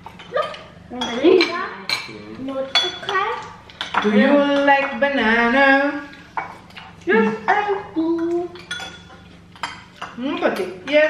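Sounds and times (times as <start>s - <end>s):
spoons clinking on ceramic bowls: 0.0s - 5.0s, 8.2s - 11.0s.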